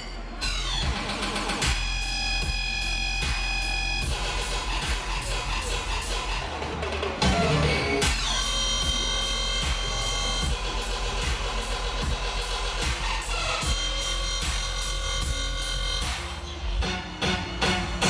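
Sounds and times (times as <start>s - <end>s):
dubstep music with heavy bass: 0.0s - 18.0s.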